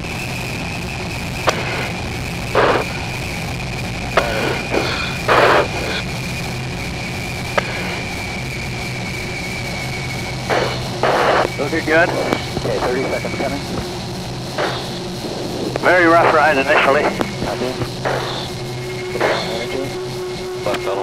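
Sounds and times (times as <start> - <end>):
constant high whine: 0.0 - 21.0
low hum: 0.0 - 21.0
radio channel hiss: 0.0 - 21.0
sharp clicks: 1.4 - 2.0, 7.5 - 8.1, 10.5 - 15.1
short bursts of static: 1.5 - 3.3, 4.1 - 6.2, 7.5 - 8.3, 10.4 - 21.0.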